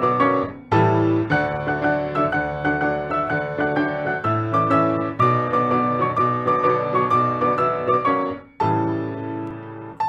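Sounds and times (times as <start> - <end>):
solo piano: 0.0 - 10.0.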